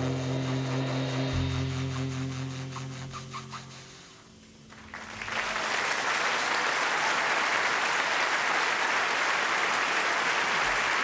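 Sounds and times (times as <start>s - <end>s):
audience applauding: 4.7s - 11.0s.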